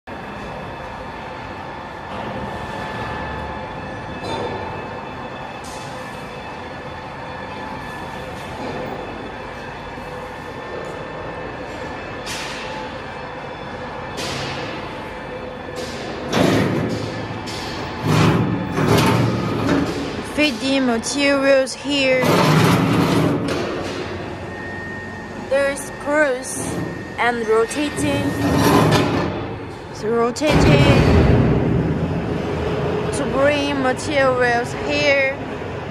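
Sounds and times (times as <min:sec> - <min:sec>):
steady motor hum: 0:00.1 - 0:35.9.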